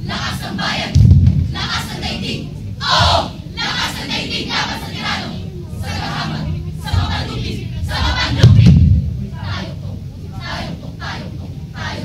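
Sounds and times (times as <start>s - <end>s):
group chanting: 0.0s - 8.7s, 9.4s - 12.0s.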